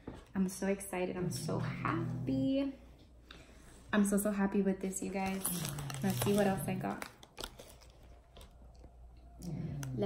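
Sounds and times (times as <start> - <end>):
packaging clicks and crackles: 5.2 - 8.9.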